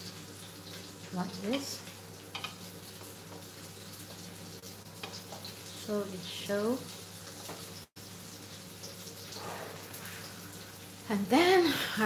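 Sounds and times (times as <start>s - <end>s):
meat sizzling in oil: 0.0s - 12.0s.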